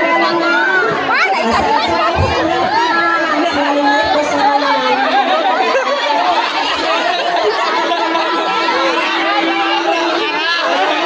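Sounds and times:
crowd talking and calling: 0:00.0 - 0:11.0.

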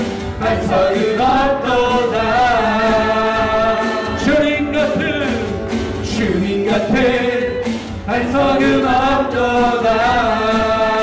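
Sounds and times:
band accompanying: 0:00.0 - 0:11.0
group singing praise song: 0:00.0 - 0:11.0.

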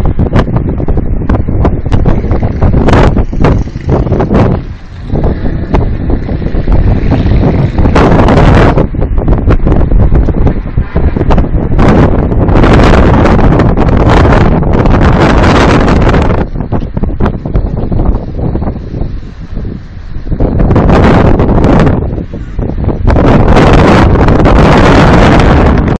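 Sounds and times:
wind buffeting microphone: 0:00.0 - 0:25.9.

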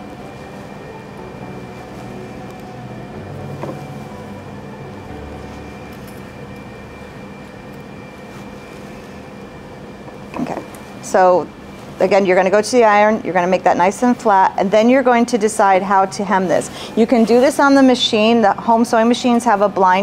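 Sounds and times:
fabric rustling: 0:00.0 - 0:09.6
faint steady tones: 0:00.0 - 0:20.0
steady machine hum: 0:00.0 - 0:20.0.

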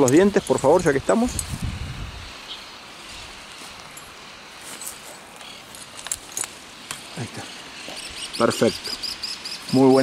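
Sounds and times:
steady faint hiss: 0:00.0 - 0:10.0.

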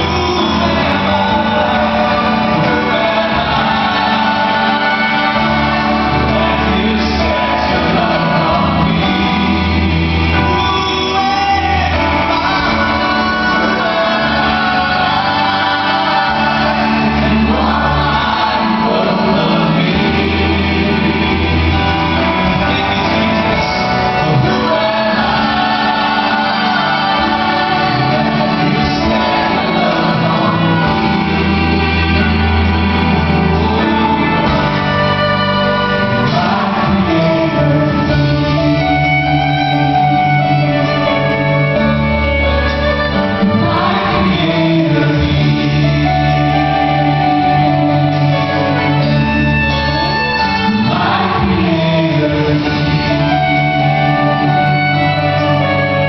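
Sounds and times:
choir singing gospel: 0:00.0 - 0:56.0
drums: 0:00.0 - 0:56.0
guitars: 0:00.0 - 0:56.0
keyboards: 0:00.0 - 0:56.0
praise band playing: 0:00.0 - 0:56.0
sustained bass line: 0:00.0 - 0:56.0.

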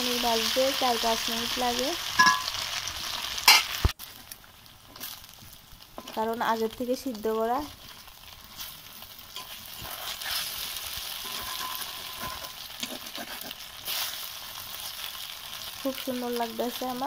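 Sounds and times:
cheese sizzling in hot oil: 0:00.0 - 0:17.0
spatula scraping and tapping wok: 0:02.2 - 0:02.6, 0:05.9 - 0:06.3, 0:07.7 - 0:14.2.

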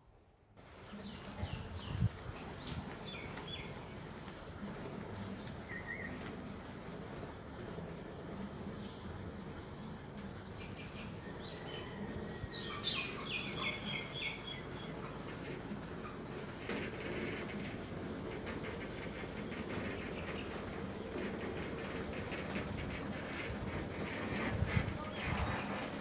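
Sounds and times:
outdoor background noise: 0:00.0 - 0:26.0.

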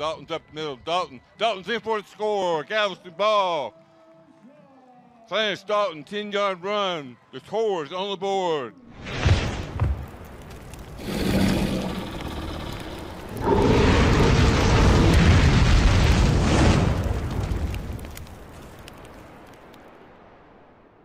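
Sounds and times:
fire and explosion effect: 0:08.9 - 0:21.0.

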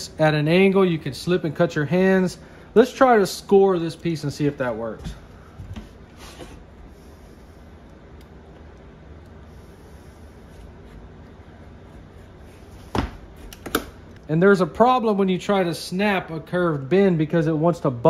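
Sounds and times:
low steady hum: 0:00.0 - 0:18.0.

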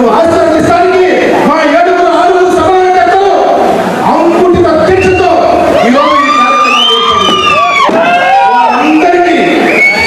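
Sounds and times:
crowd noise: 0:00.0 - 0:10.0
man shouting over loudspeakers: 0:04.2 - 0:10.0.

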